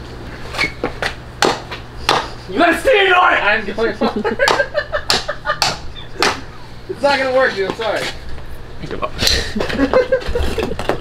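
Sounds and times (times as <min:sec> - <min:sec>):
hammer striking rock: 0:04.5 - 0:06.4.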